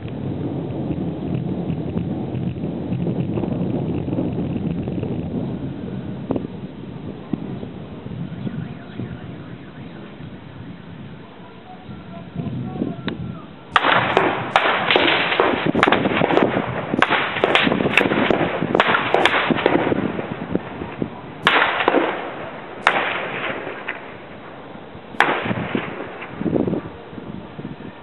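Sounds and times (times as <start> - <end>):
rapid crackling gunfire: 13.7 - 24.6, 25.2 - 26.7
loud single gunshot cracks with echo: 13.8 - 24.5, 25.2 - 26.6.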